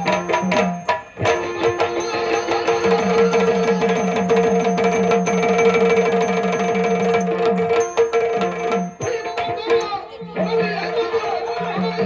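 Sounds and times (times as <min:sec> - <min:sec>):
barrel drums played by hand: 0:00.0 - 0:12.0.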